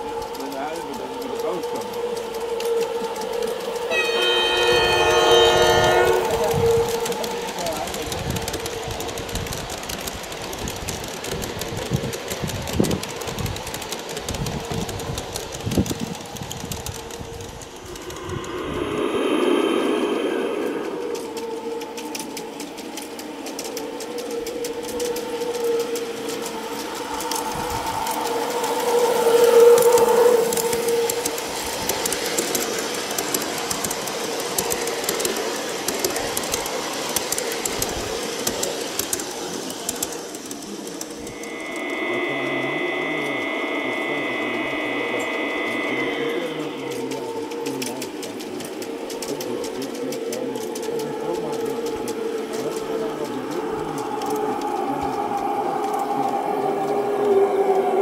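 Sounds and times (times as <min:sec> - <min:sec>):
wheels clicking over rail joints: 0:00.0 - 0:44.0, 0:45.3 - 0:58.0
model train motor hum: 0:00.0 - 0:58.0
high steady tone: 0:01.6 - 0:07.9, 0:16.8 - 0:23.8, 0:25.1 - 0:49.6.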